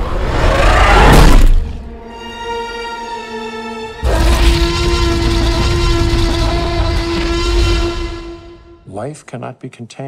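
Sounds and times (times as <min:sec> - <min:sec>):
held note of trailer music: 0:00.1 - 0:09.2
dinosaur roar with deep rumble: 0:04.0 - 0:07.9.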